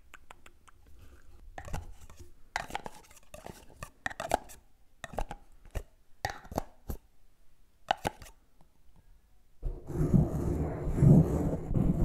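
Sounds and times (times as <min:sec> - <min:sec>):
plastic jar lid taps and clacks: 0:01.6 - 0:07.0, 0:07.9 - 0:08.4.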